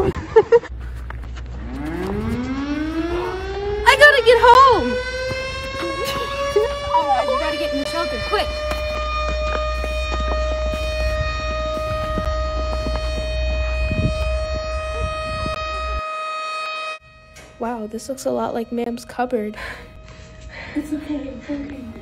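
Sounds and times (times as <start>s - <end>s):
air-raid siren: 1.2s - 22.0s
girls shouting: 6.8s - 7.8s.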